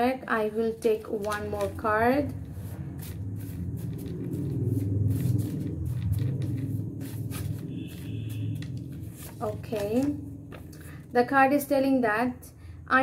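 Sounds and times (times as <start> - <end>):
low steady rumble: 0.2 - 11.8
cards being shuffled: 0.8 - 11.0.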